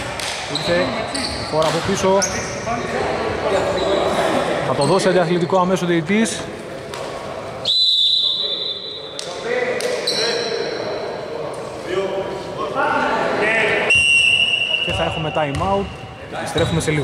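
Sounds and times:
players' voices echoing: 0.0s - 17.0s
referee's whistle blasts: 7.6s - 9.1s, 13.9s - 16.1s.

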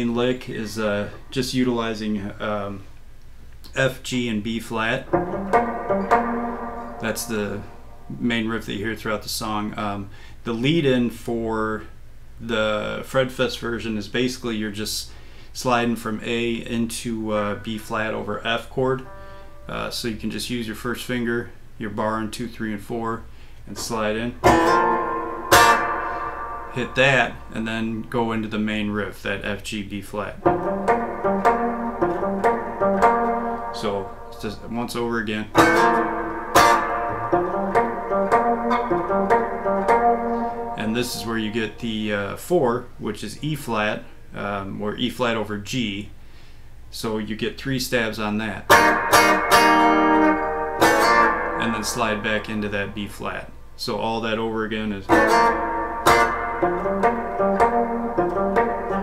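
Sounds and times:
electric guitar picked notes: 4.9s - 8.2s, 19.0s - 19.8s, 23.8s - 27.6s, 30.4s - 41.8s, 48.7s - 53.0s, 55.1s - 59.0s.

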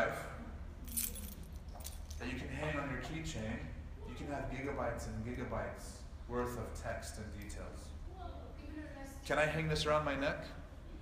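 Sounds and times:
keys jangling: 0.8s - 2.3s.

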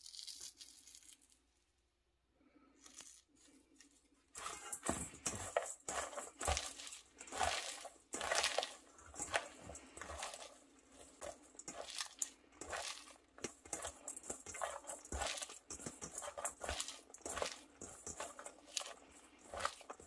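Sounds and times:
shredded cabbage rustling and crunching: 2.8s - 20.0s.

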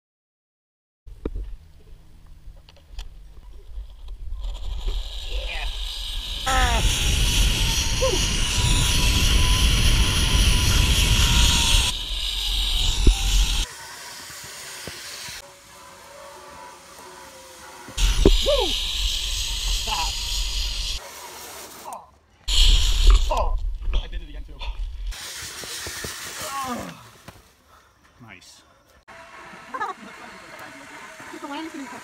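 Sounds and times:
pulley whining on cable: 3.8s - 23.4s, 29.1s - 32.0s
wind buffeting microphone: 5.7s - 13.6s
person whooping: 18.4s - 18.8s, 26.4s - 27.2s.

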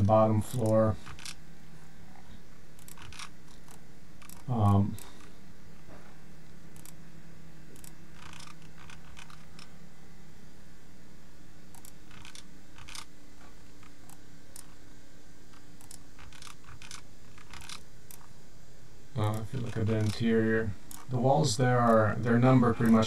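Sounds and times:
faint electrical hum: 0.0s - 23.0s
computer mouse clicks: 2.8s - 5.3s, 6.8s - 7.0s, 7.7s - 9.7s, 11.7s - 13.1s, 13.8s - 14.8s, 15.5s - 18.3s, 19.2s - 20.2s.

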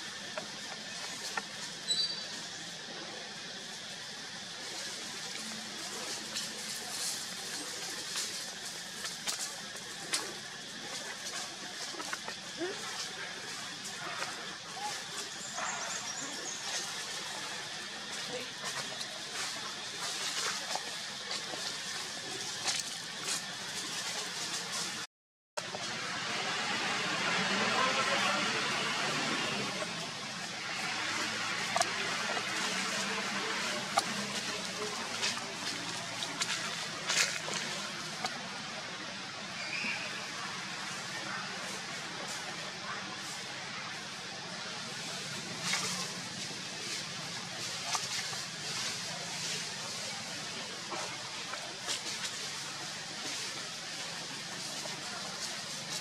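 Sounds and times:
distant voices: 0.0s - 56.0s
steady outdoor hiss: 0.0s - 56.0s.

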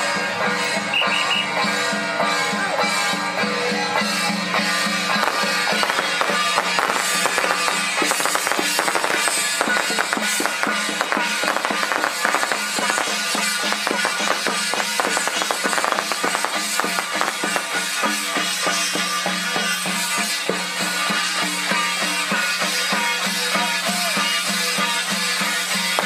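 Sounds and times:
cymbals: 0.0s - 26.0s
hand gongs: 2.8s - 24.2s
waist drums: 2.8s - 26.0s.

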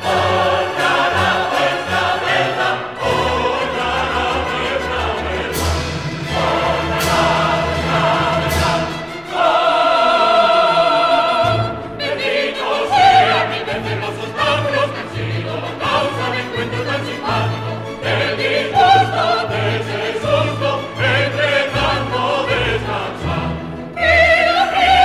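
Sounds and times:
chorus singing: 0.0s - 25.0s
full orchestra: 0.0s - 25.0s
operatic soloists singing: 0.0s - 25.0s.

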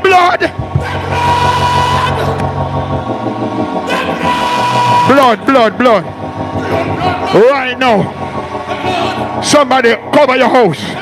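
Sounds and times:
held background music: 0.0s - 11.0s
congregation singing: 0.6s - 10.1s.

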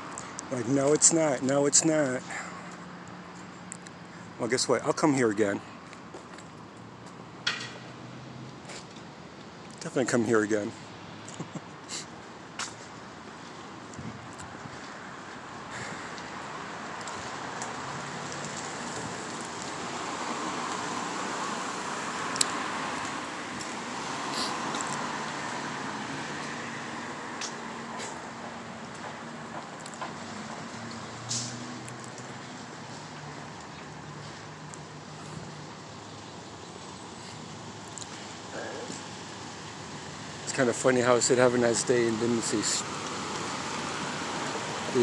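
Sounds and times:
cars going by: 0.0s - 45.0s.

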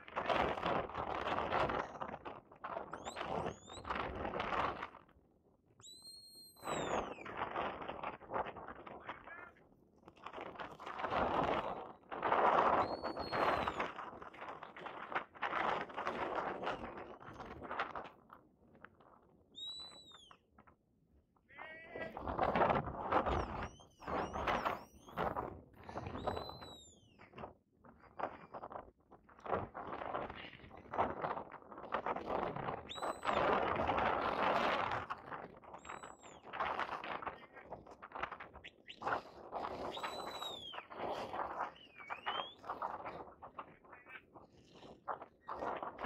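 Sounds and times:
shepherd's whistle: 3.0s - 3.9s, 5.8s - 7.4s, 12.8s - 13.9s, 19.5s - 20.4s, 23.3s - 25.4s, 26.0s - 27.3s, 32.9s - 33.5s, 35.8s - 36.5s, 39.8s - 42.7s.

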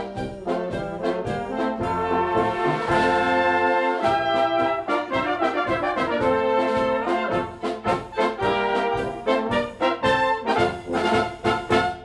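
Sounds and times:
brass band playing polka: 0.0s - 12.0s.

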